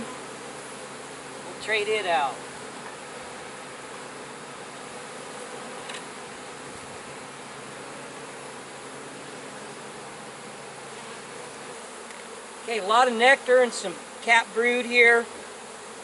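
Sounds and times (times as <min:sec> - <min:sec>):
honey bees buzzing: 0:00.0 - 0:16.0.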